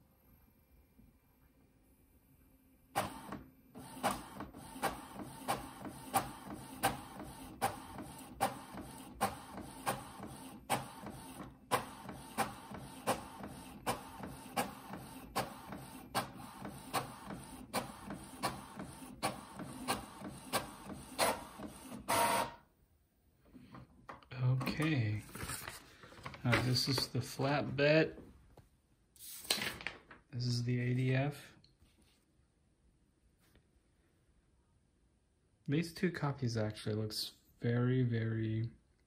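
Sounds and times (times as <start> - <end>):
inkjet printer printing: 3.0 - 22.6.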